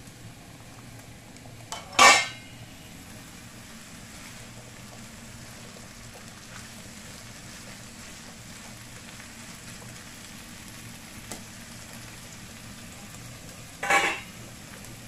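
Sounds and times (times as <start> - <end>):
bacon and onion sizzling in pan: 0.0 - 15.0
spatula clattering against pan: 1.7 - 2.4, 13.8 - 14.3.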